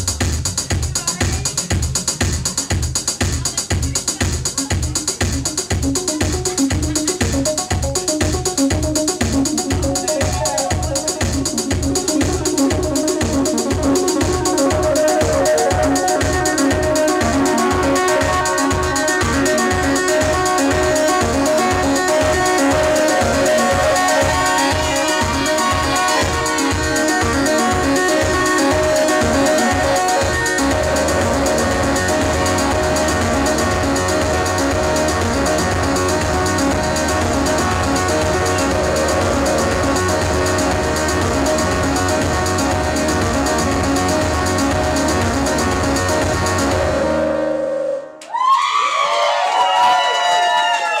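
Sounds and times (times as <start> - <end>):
electronic music with synthesizers: 0.0 - 48.2
burst of sliding pitches: 6.2 - 48.2.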